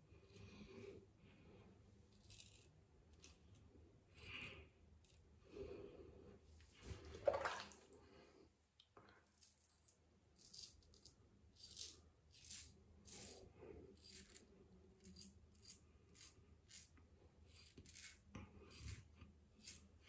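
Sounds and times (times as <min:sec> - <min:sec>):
razor scraping stubble: 0:17.6 - 0:20.0.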